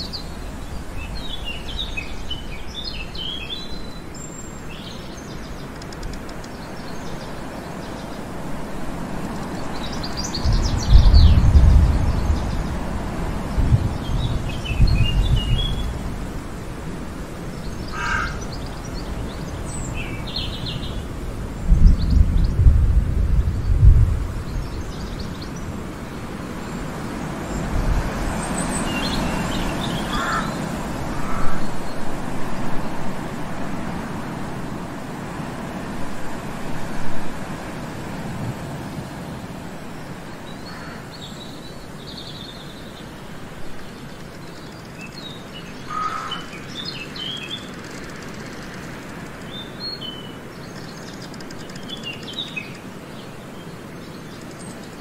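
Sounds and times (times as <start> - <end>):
small birds chirping: 0.0 - 22.8, 23.4 - 33.0, 40.1 - 55.0
steady outdoor hiss: 0.0 - 55.0.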